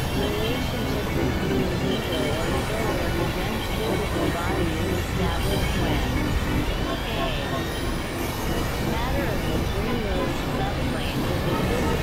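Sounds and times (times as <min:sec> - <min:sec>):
wavering gliding electronic tones: 0:00.0 - 0:12.0.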